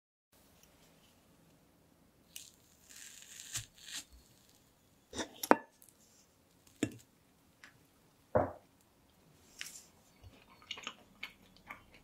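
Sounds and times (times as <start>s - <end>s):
fork tearing through cake: 2.3s - 4.6s.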